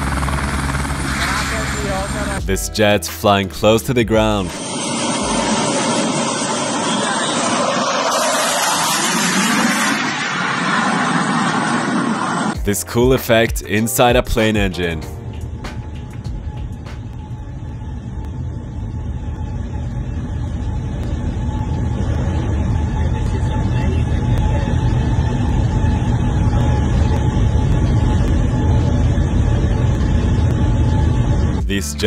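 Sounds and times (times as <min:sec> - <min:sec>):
jet engine rumble and whine: 0:00.0 - 0:31.8.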